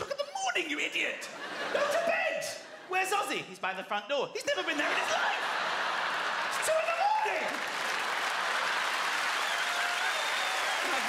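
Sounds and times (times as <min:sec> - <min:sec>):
audience applauding: 0:05.0 - 0:11.0.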